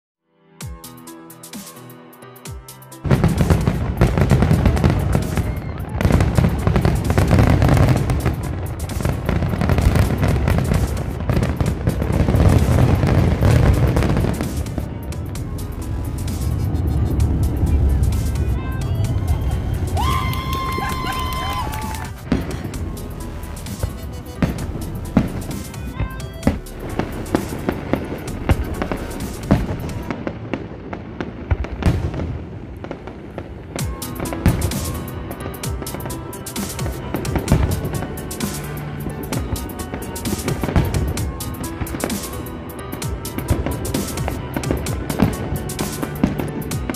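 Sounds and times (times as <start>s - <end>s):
fireworks booming and crackling: 3.0s - 46.9s.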